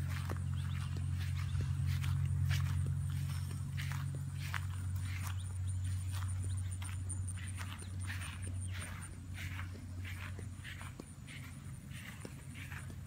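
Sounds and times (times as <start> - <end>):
footsteps in long grass: 0.0 - 13.0.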